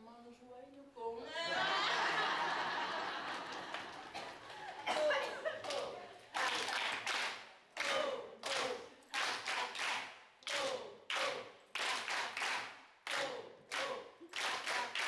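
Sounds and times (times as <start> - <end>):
people clapping in unison: 2.8 - 15.0.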